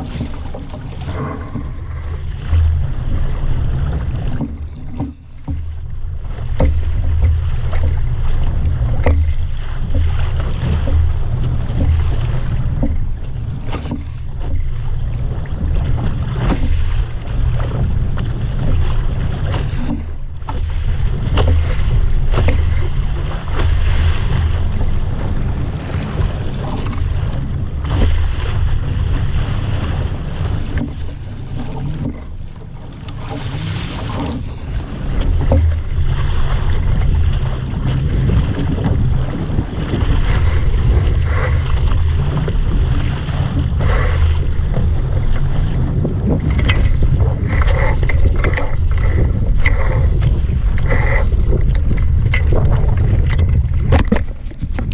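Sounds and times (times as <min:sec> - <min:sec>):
water splashing along hull: 0:00.0 - 0:54.9
wind buffeting microphone: 0:00.0 - 0:54.9.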